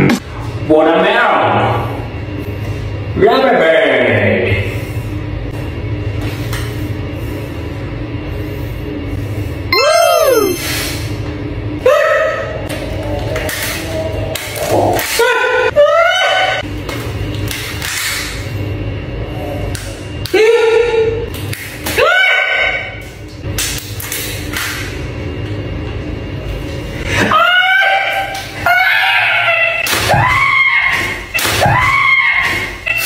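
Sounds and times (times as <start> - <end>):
swooping rising and falling tones: 9.7 - 10.7.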